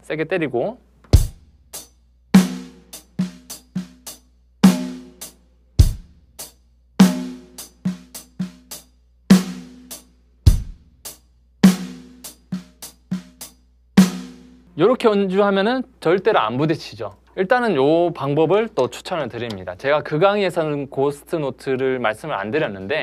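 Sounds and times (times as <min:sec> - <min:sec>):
bass drum: 0:01.1 - 0:01.7, 0:05.8 - 0:06.4, 0:10.5 - 0:11.1.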